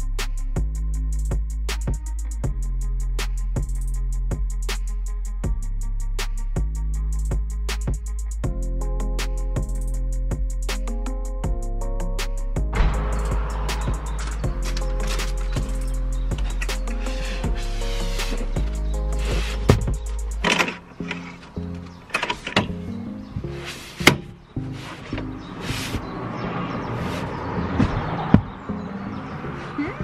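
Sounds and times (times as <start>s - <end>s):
background music with bass line: 0.0s - 26.2s.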